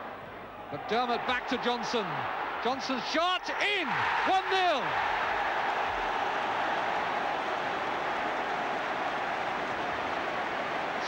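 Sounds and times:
crowd cheering: 0.5s - 11.0s.

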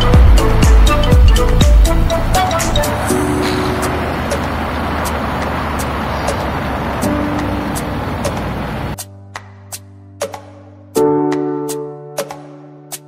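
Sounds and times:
motorcycle engine: 0.0s - 9.0s
background music with beat: 0.0s - 13.0s
wind rushing: 0.4s - 9.0s.

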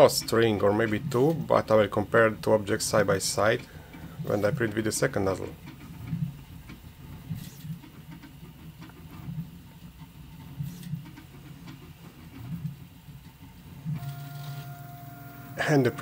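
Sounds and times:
stepper motors humming: 14.0s - 16.0s
thin steady whine: 14.0s - 16.0s.

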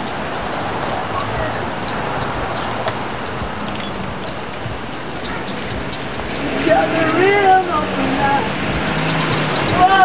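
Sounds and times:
faint high chirp: 0.0s - 7.6s
city street traffic: 0.0s - 10.0s.

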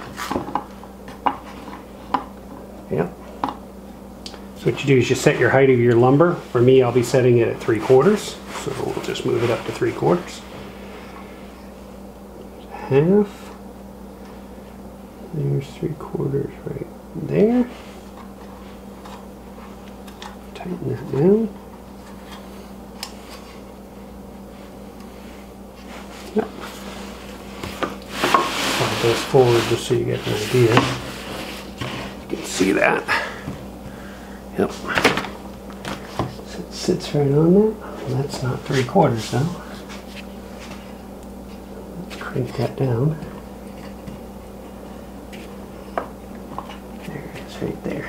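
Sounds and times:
steady low hum: 0.0s - 48.0s
tool scraping on wooden board: 27.6s - 32.2s.

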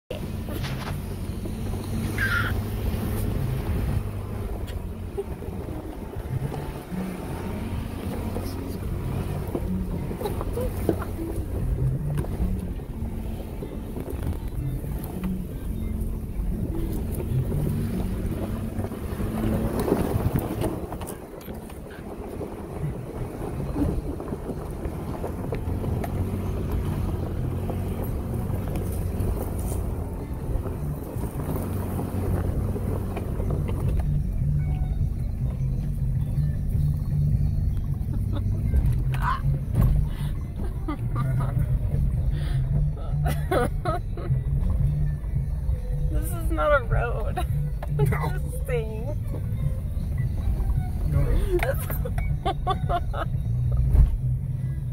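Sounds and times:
vehicle engine rumble: 0.0s - 54.9s.

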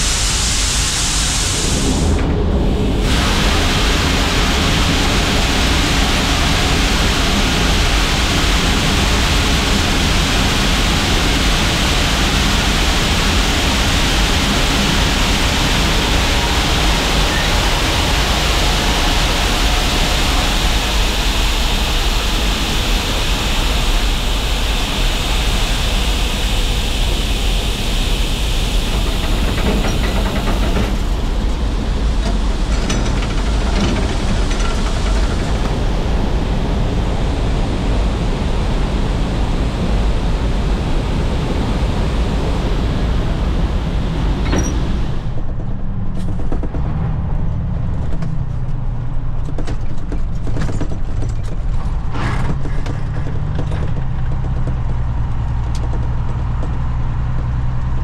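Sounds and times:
low rumble: 0.0s - 49.4s.

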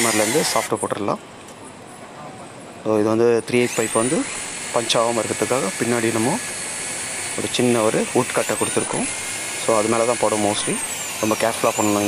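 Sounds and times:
electric drill whining: 0.0s - 0.7s, 3.6s - 12.0s.

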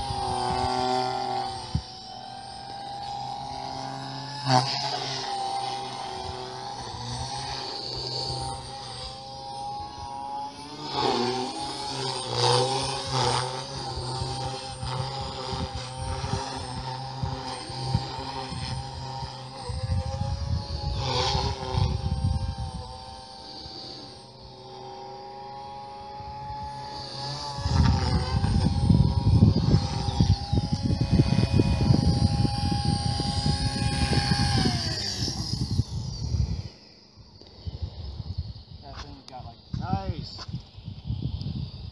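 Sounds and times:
rc helicopter rotor whine: 0.0s - 41.9s.

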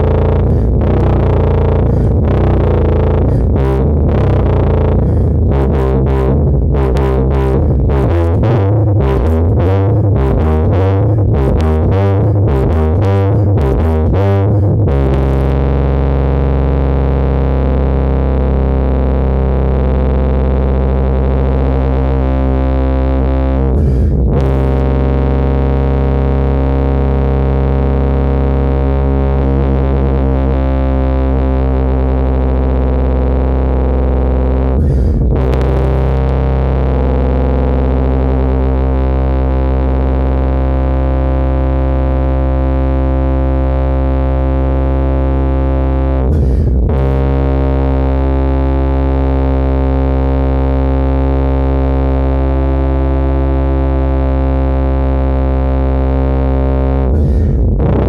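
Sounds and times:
tuba low sustained notes: 0.0s - 58.0s.

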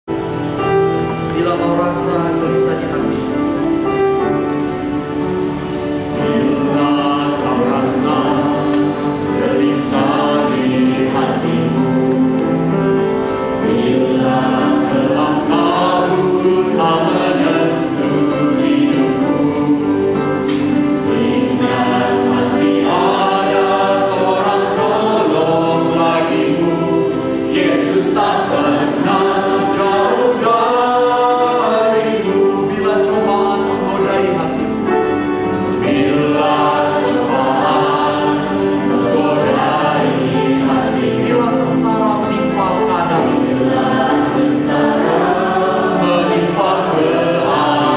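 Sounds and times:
piano playing hymn chords: 0.0s - 47.9s.

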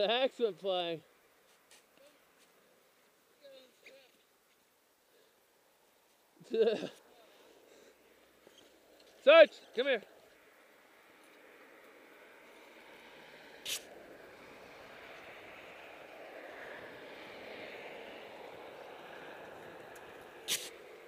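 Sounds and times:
vehicle passing on highway: 6.2s - 21.0s.

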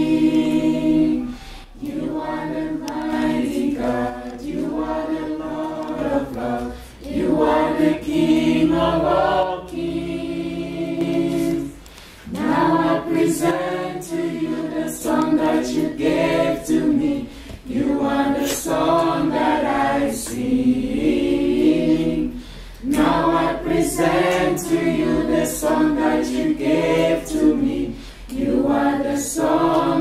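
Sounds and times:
group singing a worship chorus: 0.0s - 30.0s.

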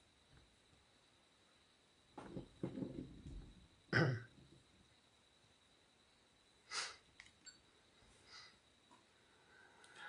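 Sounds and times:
man clearing his throat: 3.9s - 4.3s.

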